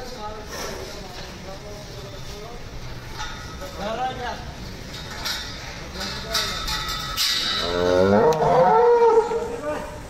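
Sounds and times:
cow mooing: 7.6s - 9.5s.

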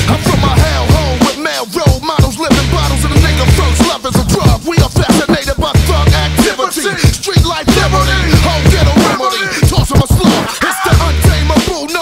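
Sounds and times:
deep bass line: 0.0s - 1.2s, 2.3s - 6.5s, 7.4s - 9.1s, 9.7s - 11.6s
rapping over a hip hop beat: 0.0s - 12.0s.

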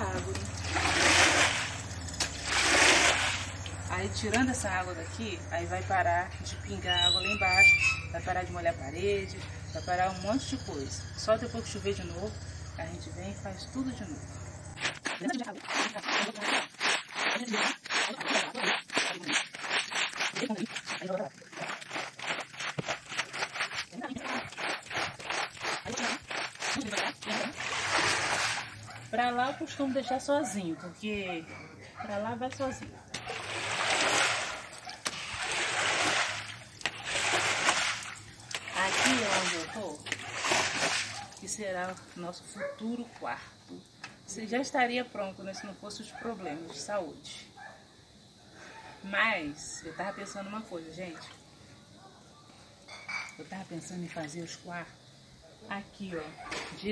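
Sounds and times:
squeegee swishing water on concrete: 0.0s - 4.4s, 14.8s - 29.2s, 33.2s - 42.0s.

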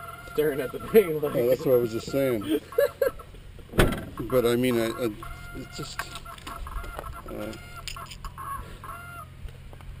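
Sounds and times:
short bird calls: 5.1s - 9.3s.

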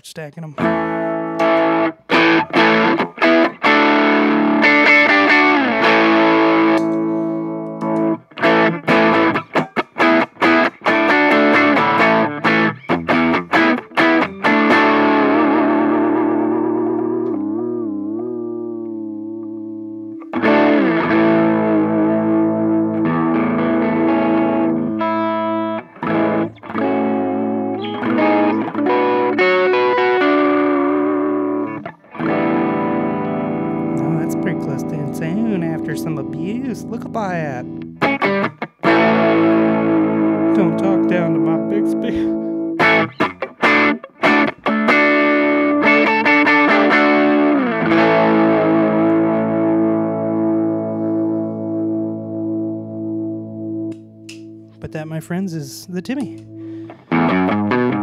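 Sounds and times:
distorted electric guitar: 0.0s - 58.0s.

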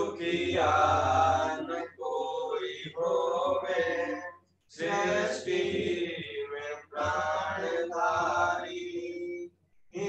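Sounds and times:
mantras chanted aloud: 0.0s - 10.0s.

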